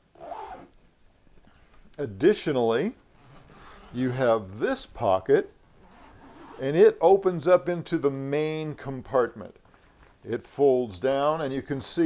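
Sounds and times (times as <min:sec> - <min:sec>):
fabric zipper rasp: 0:00.1 - 0:00.7, 0:05.8 - 0:06.7.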